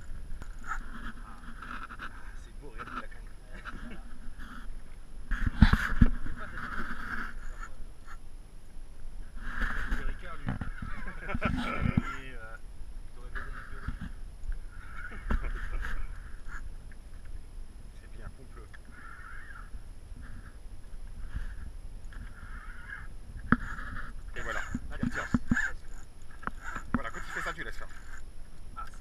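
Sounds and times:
fishing reel drag squealing: 18.9s - 20.6s, 22.2s - 28.3s.

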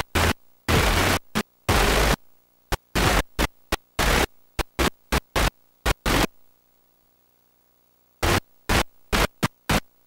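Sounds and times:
videotape static hiss: 0.0s - 10.0s.

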